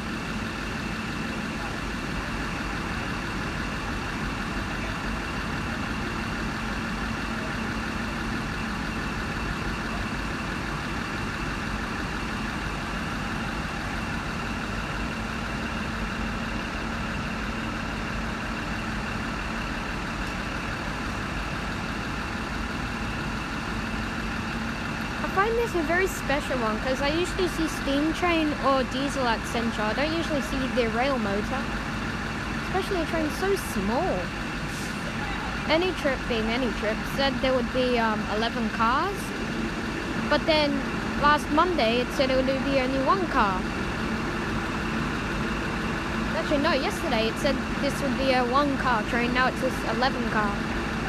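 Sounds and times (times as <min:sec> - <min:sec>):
diesel engine idling: 0:00.0 - 0:51.0.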